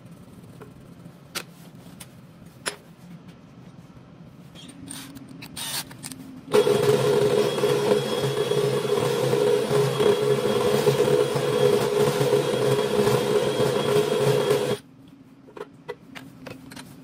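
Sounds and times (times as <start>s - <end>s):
cordless drill cutting steel: 6.5s - 14.8s.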